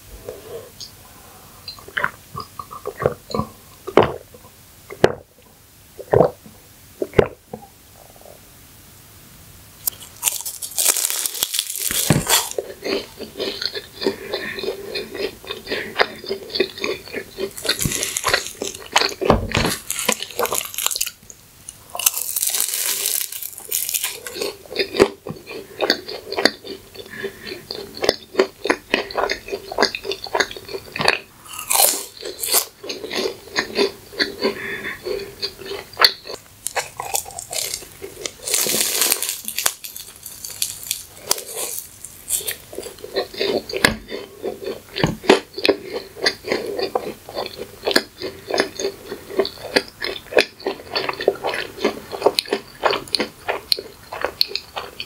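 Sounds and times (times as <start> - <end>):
crunchy chewing: 9.8 - 55.0
sharp crunchy bite: 9.9 - 26.8, 28.0 - 34.4, 35.7 - 45.5.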